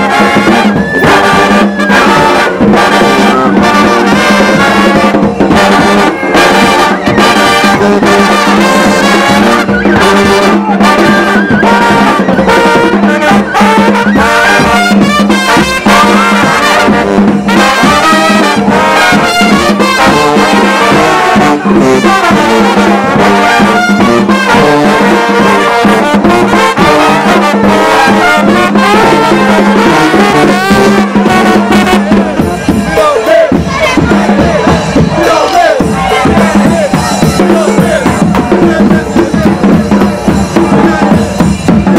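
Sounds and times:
brass band playing: 0:00.0 - 0:41.9.

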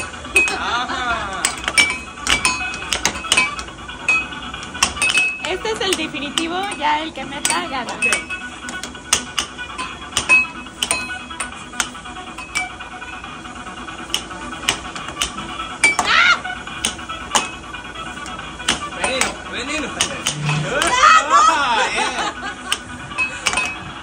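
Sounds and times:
air hockey puck clacking: 0:00.0 - 0:24.0
background music: 0:00.0 - 0:24.0.

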